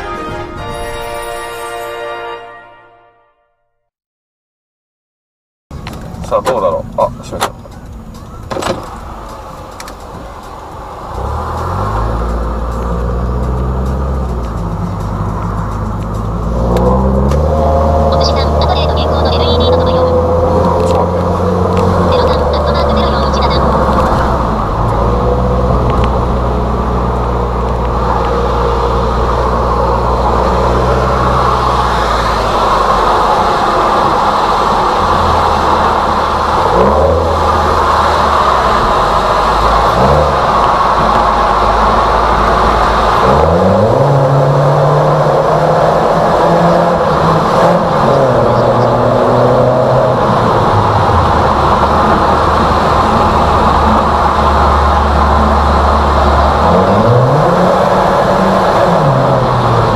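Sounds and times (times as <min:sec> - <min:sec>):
loud car exhaust accelerating: 0:05.7 - 0:59.9.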